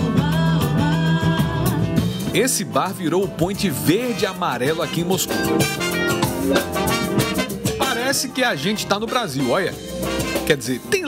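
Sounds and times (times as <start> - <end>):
samba band playing: 3.9 - 11.0.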